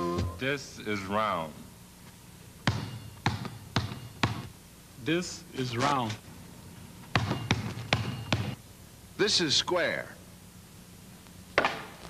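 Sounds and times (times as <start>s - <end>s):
basketball bouncing on hard floor: 2.6s - 4.5s, 7.1s - 8.6s.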